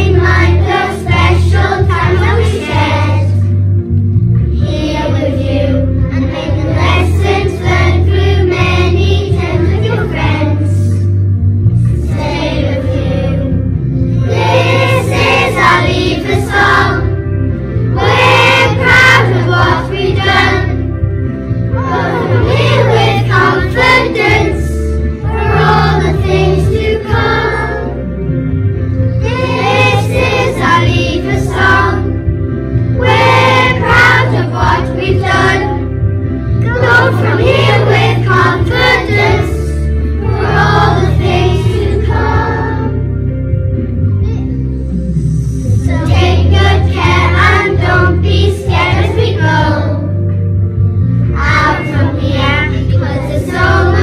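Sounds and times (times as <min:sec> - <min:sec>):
children singing in unison: 0:00.0 - 0:03.4, 0:14.3 - 0:17.2, 0:18.0 - 0:20.8, 0:21.8 - 0:28.0, 0:29.2 - 0:32.2, 0:33.0 - 0:35.9, 0:36.7 - 0:43.0, 0:45.9 - 0:50.0, 0:51.4 - 0:54.0
musical accompaniment: 0:00.0 - 0:54.0.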